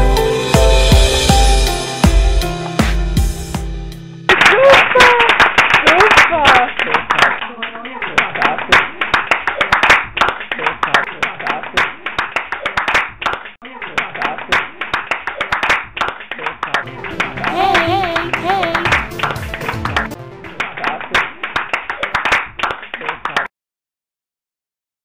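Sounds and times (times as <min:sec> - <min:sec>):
crowd clapping: 0:04.3 - 0:23.5.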